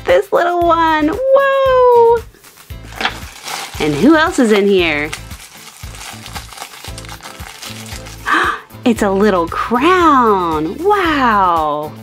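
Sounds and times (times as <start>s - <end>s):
crinkly bag being torn open: 2.9s - 8.4s.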